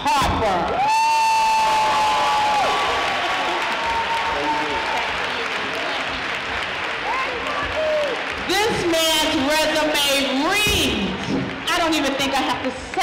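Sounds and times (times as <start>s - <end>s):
whoops: 0.7s - 5.0s, 7.0s - 8.3s
audience applauding: 0.8s - 13.0s.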